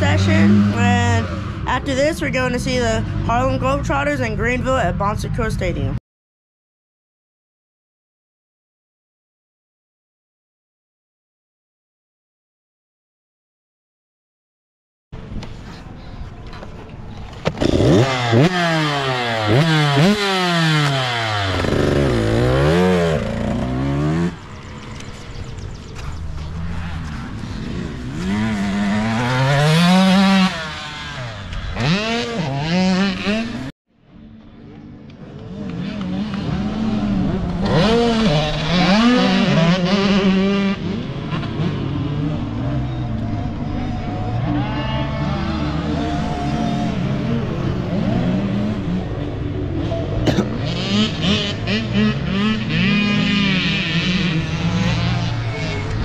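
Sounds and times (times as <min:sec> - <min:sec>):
two-stroke engine revving: 0:00.0 - 0:01.9, 0:17.5 - 0:25.0, 0:26.5 - 0:33.7, 0:35.7 - 0:44.4, 0:45.2 - 0:56.0
dirt bike engines riding: 0:00.0 - 0:06.0, 0:15.2 - 0:56.0.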